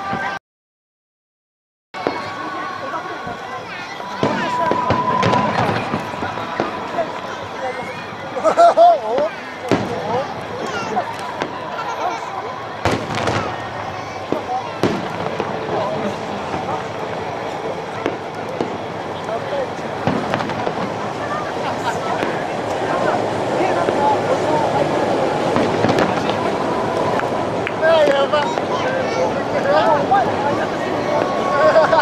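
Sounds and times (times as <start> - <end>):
spectators talking: 0.0 - 0.4, 2.0 - 32.0
firework shells bursting: 4.2 - 7.3, 12.6 - 24.3, 24.9 - 28.7.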